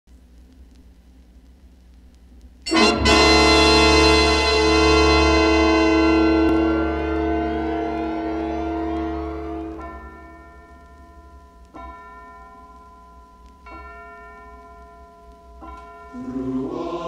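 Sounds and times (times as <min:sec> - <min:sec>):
loud orchestral chord with brass: 0:02.7 - 0:10.0.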